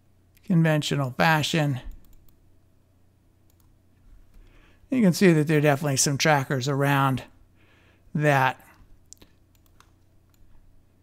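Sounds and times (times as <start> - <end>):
computer mouse clicks: 1.9 - 2.4, 3.4 - 4.5, 9.1 - 10.5
man's voice: 4.9 - 7.3, 8.2 - 8.7.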